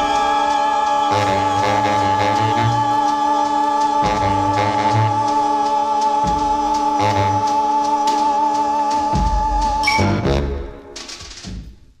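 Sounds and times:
orchestral pop music: 0:00.0 - 0:11.8.

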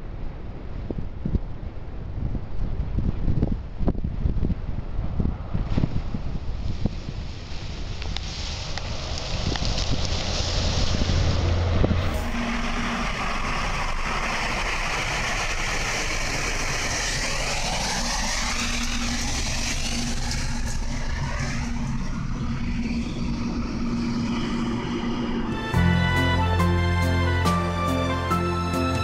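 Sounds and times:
train rumbling through snow: 0:00.0 - 0:29.0
train rushing past: 0:05.0 - 0:29.0.

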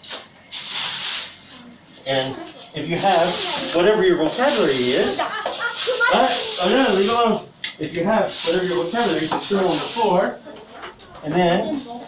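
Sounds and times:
plastic bag rustling: 0:00.0 - 0:10.4.

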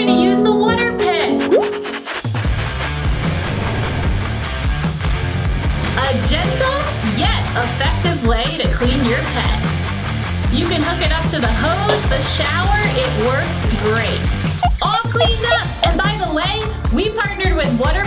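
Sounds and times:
background music: 0:00.0 - 0:18.0
water spraying with steady hiss: 0:05.8 - 0:14.7.

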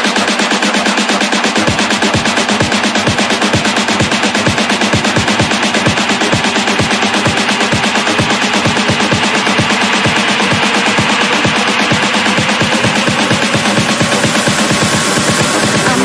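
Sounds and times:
continuous synth sounds: 0:00.0 - 0:16.0
fast kick drum: 0:00.0 - 0:16.0.

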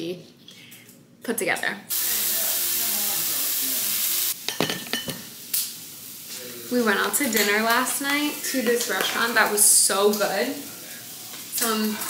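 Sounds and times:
sausages sizzling in a frying pan: 0:01.9 - 0:12.0.

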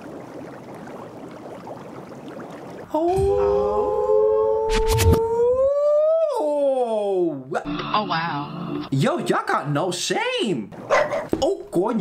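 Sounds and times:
hot tub jets bubbling: 0:00.0 - 0:03.1.

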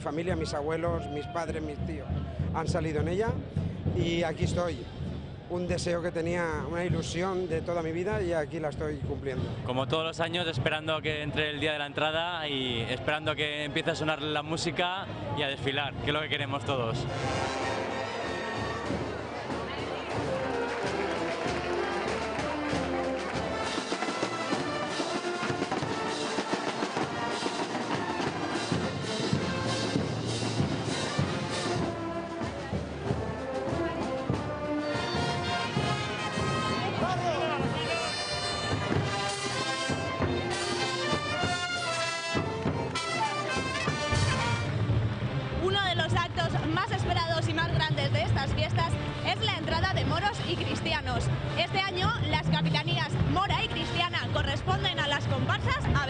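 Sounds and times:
brass band playing: 0:16.2 - 0:56.0.

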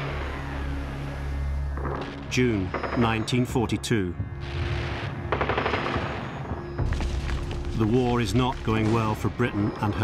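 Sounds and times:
gunfire: 0:04.5 - 0:06.5
machine-gun burst: 0:05.3 - 0:06.3.

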